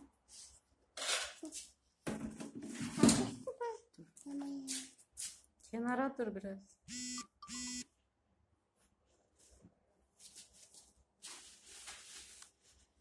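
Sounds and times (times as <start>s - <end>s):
buzzing electronic beeps: 6.9s - 7.8s.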